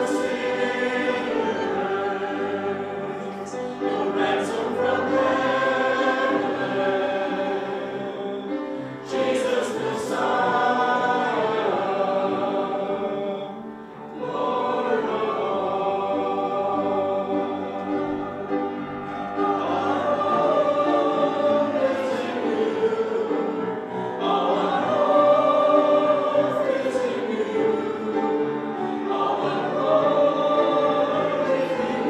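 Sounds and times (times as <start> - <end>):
congregation singing worship song: 0.0 - 32.0.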